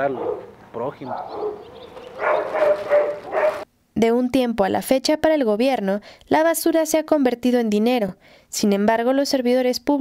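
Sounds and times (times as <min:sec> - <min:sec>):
dog calling: 0:00.0 - 0:03.7.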